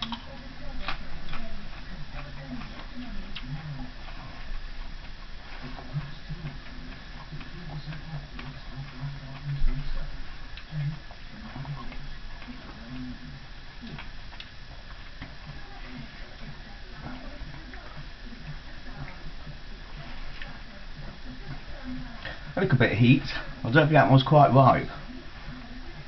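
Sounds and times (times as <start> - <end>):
man chewing: 0.0 - 22.6.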